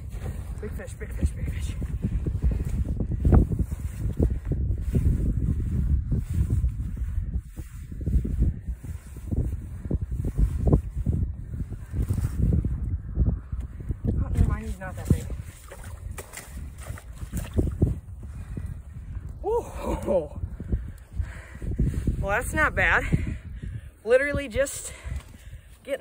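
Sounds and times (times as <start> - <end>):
wind buffeting microphone: 0.0 - 26.0
voice: 0.6 - 1.8, 14.2 - 15.3, 22.2 - 23.1, 24.1 - 25.0.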